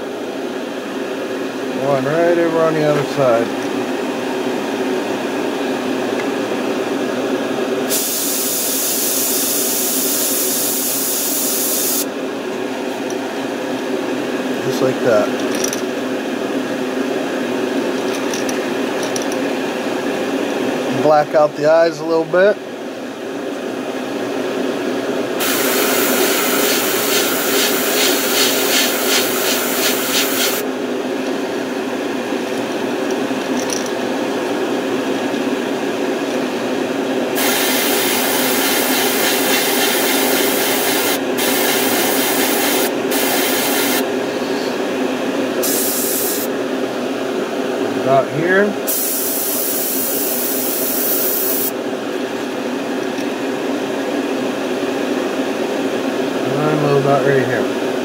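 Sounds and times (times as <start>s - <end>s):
fan-like hum: 0.0s - 58.0s
airbrush spraying hiss: 7.9s - 12.1s, 25.4s - 30.6s, 37.4s - 44.0s, 45.6s - 46.5s, 48.9s - 51.7s.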